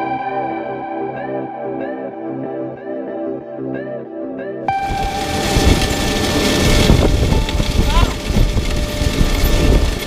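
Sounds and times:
planter rumbling and rattling: 0:04.7 - 0:10.0
wind buffeting microphone: 0:04.7 - 0:10.0.

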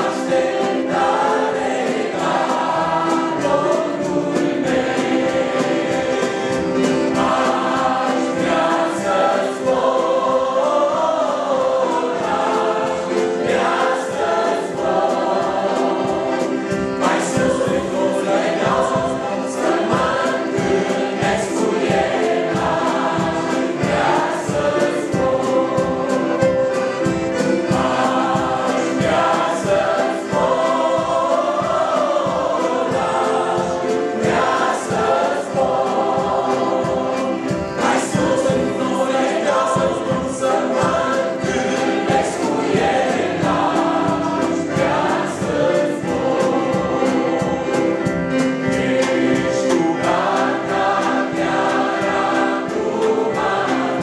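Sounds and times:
accompaniment with steady beat: 0:00.0 - 0:54.0
choir singing a hymn: 0:00.0 - 0:54.0.

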